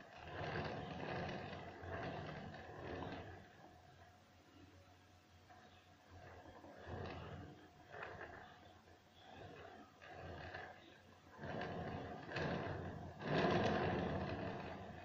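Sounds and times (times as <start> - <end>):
cake turntable grinding scrape: 0.0 - 4.1, 5.5 - 15.0.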